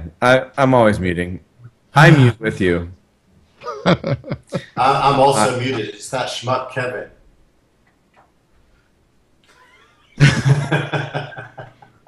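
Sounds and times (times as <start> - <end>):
man laughing: 3.6 - 6.0, 9.5 - 12.0.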